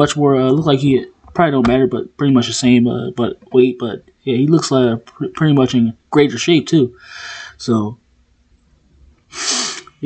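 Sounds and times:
man's sharp burst of breath: 9.3 - 10.0.

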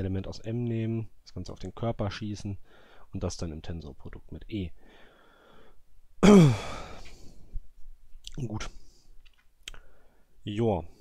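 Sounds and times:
man sighing: 6.2 - 7.5.

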